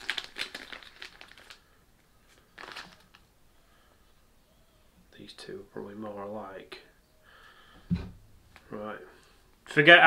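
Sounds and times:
plastic packet crinkling: 0.0s - 3.3s.

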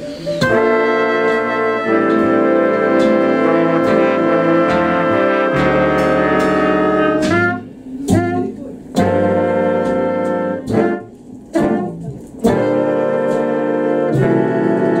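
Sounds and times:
swing big band playing: 0.0s - 15.0s.

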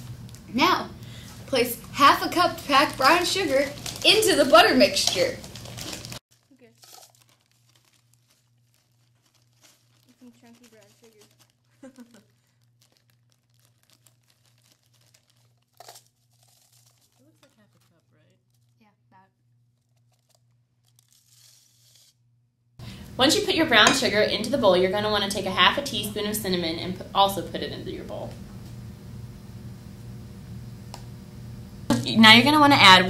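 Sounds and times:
steady low hum: 0.0s - 6.7s, 22.8s - 33.0s
plastic bag crinkling: 1.1s - 19.0s, 19.6s - 22.0s.

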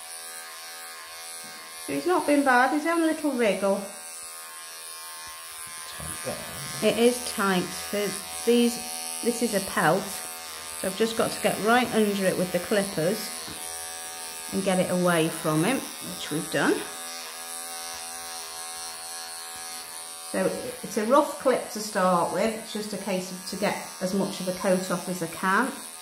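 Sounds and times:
electric clippers buzzing: 0.0s - 26.0s.

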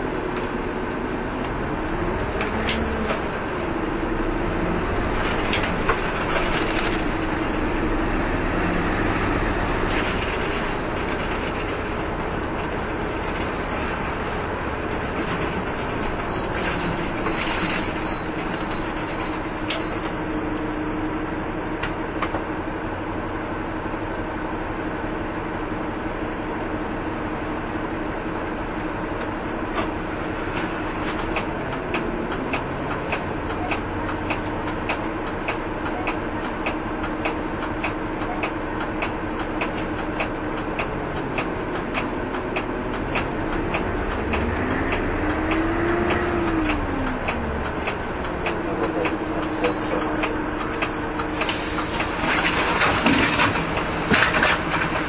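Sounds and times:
bus engine and road noise: 0.0s - 55.0s
faint high whistle: 16.2s - 22.5s.

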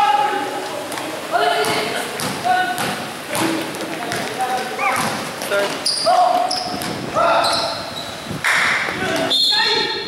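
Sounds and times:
basketball bouncing on floor: 1.6s - 5.2s.

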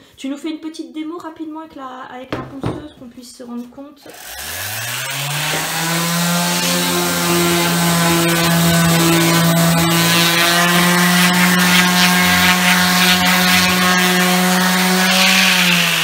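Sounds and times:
sander motor humming: 4.1s - 16.0s
sandpaper rubbing on wood: 5.1s - 16.0s.

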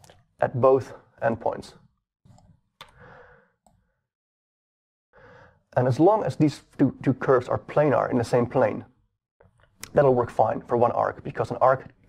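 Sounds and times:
computer mouse clicks: 2.3s - 3.0s.

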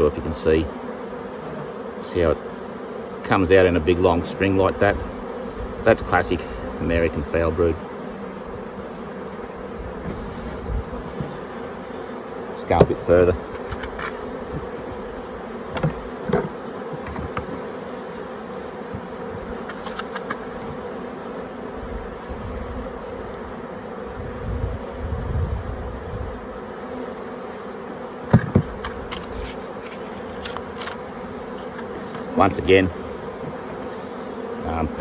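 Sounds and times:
honeybees buzzing: 0.0s - 35.0s
knocks from wooden frames: 15.7s - 17.6s, 28.3s - 29.2s.

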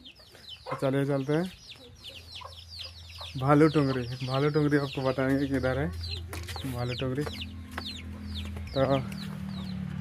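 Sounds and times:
chickens calling: 0.0s - 10.0s.

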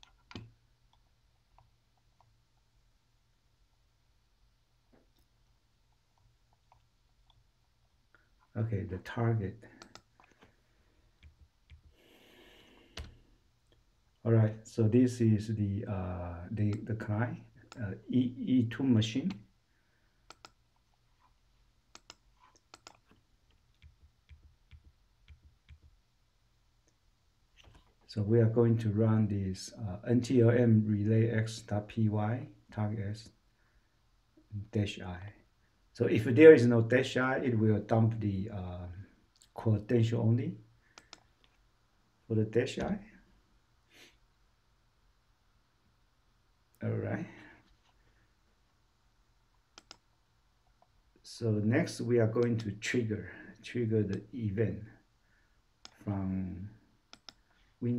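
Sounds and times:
computer mouse clicks: 9.8s - 10.5s, 12.9s - 13.8s, 20.2s - 26.0s, 40.9s - 41.6s, 49.7s - 50.9s, 55.8s - 56.0s, 57.1s - 57.6s
keyboard keystroke clicks: 21.9s - 23.1s, 49.8s - 50.0s.

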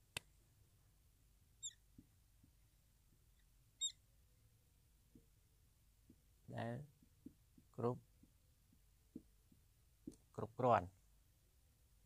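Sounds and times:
marker squeaking on whiteboard: 1.6s - 1.9s.

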